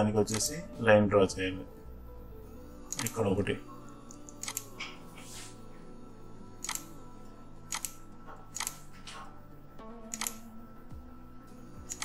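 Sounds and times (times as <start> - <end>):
computer mouse clicking: 2.9 - 3.2, 4.1 - 4.7, 6.6 - 6.9, 7.7 - 8.8, 10.1 - 10.4.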